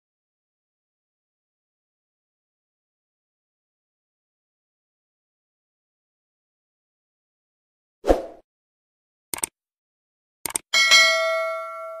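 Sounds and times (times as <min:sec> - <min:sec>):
double mouse click: 0:10.4 - 0:10.6
bright bell ding: 0:10.8 - 0:12.0.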